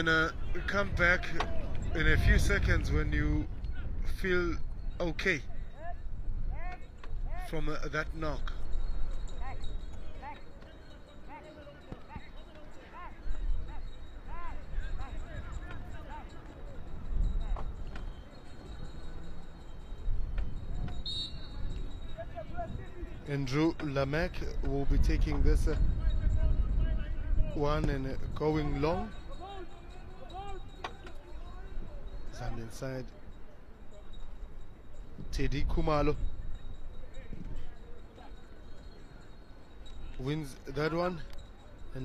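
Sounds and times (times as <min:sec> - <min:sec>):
wind rumble on microphone: 0:00.0 - 0:10.2, 0:13.2 - 0:32.6
faint shouts of players: 0:00.2 - 0:02.0.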